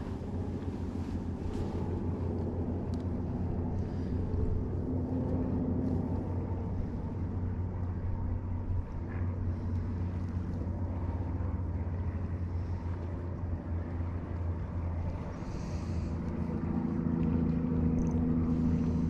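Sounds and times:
low motor hum: 0.0s - 19.0s.

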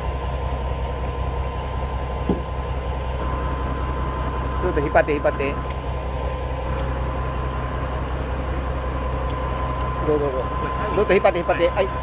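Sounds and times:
boat engine humming: 0.0s - 12.0s
faint steady whine: 0.0s - 12.0s.

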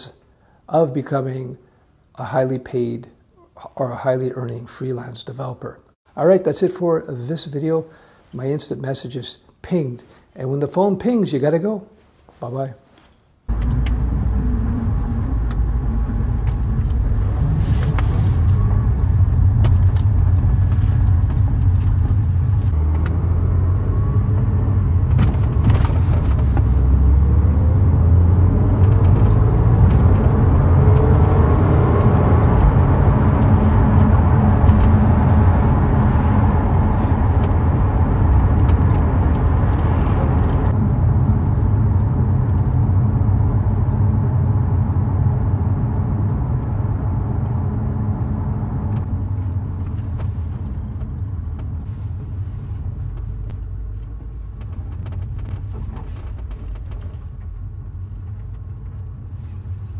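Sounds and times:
car engine and tyre rumble: 13.5s - 59.9s.

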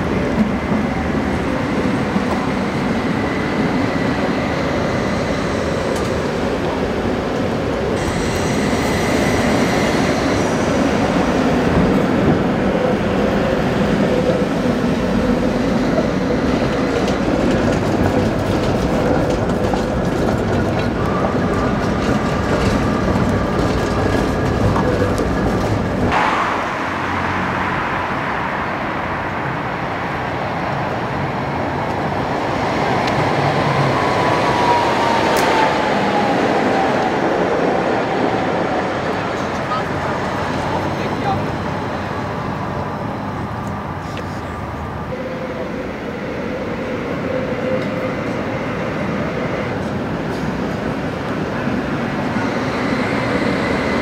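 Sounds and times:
tram wheels rumbling and rattling: 0.0s - 54.0s.

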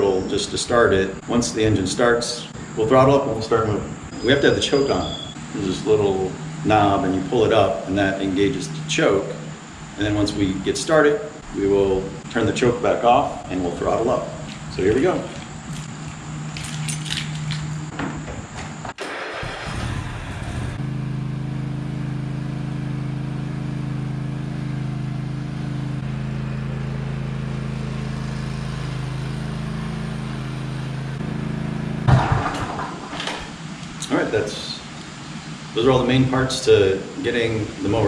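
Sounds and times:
mower engine cranking: 19.0s - 20.7s
mower engine idling: 19.1s - 33.2s.

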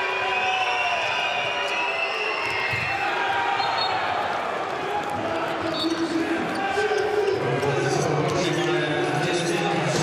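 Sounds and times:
arena crowd noise: 0.0s - 10.0s
handball bouncing on court: 2.4s - 3.0s.

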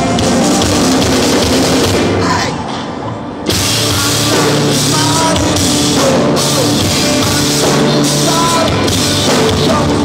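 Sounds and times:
driving drum kit: 0.0s - 2.4s, 3.4s - 10.0s
guitars: 0.0s - 10.0s
rock band playing live: 0.0s - 10.0s.

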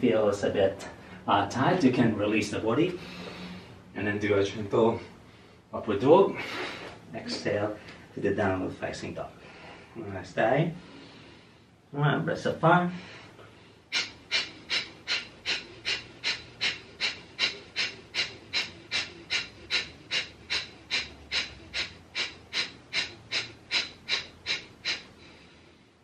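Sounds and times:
forceful nasal exhalations: 6.3s - 8.0s, 13.4s - 26.0s.

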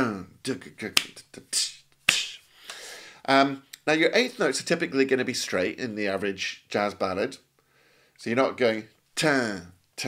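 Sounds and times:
man's vocal percussion: 0.0s - 2.5s.

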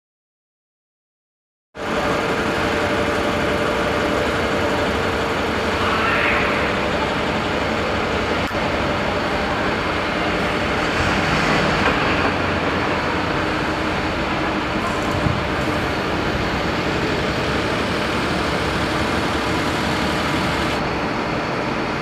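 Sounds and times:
urban traffic noise: 1.9s - 22.0s.

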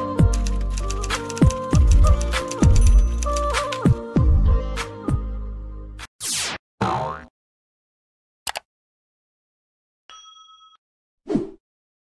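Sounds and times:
cartoon boing: 6.8s - 7.3s.

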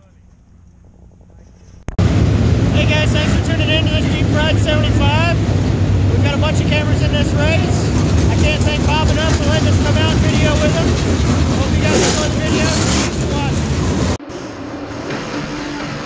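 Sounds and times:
race car engines at high revs: 2.0s - 16.0s.

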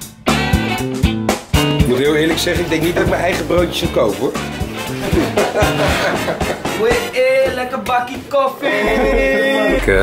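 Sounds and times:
background music with beat: 0.0s - 10.0s.

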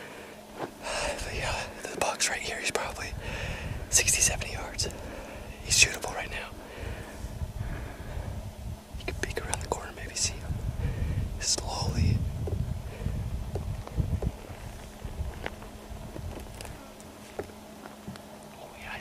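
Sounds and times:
low rumble: 0.0s - 19.0s
man whispering: 0.8s - 3.2s, 3.9s - 6.6s, 9.0s - 10.6s, 11.4s - 12.2s, 18.5s - 19.0s.

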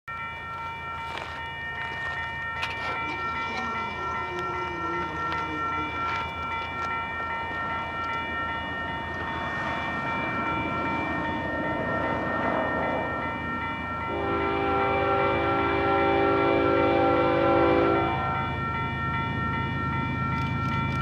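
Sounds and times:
crossing warning bell ringing: 0.1s - 21.0s
freight train rumble: 0.1s - 21.0s.

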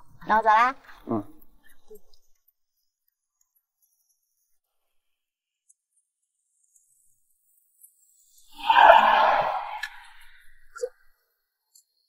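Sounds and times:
loud whoosh: 8.6s - 10.3s.

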